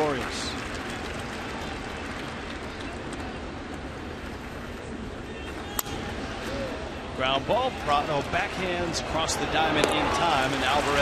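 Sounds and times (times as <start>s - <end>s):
baseball bat crack: 5.6s - 6.6s, 9.6s - 10.2s.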